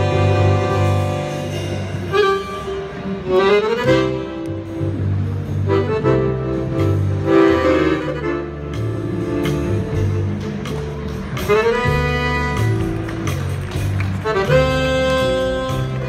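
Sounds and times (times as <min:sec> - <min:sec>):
accordions playing lively tune: 0:00.0 - 0:16.0.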